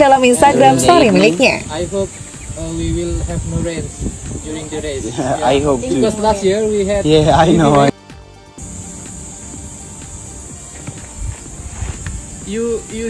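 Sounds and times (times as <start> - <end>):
indistinct voices talking: 0.0 - 11.6
steady high hiss: 0.0 - 13.0.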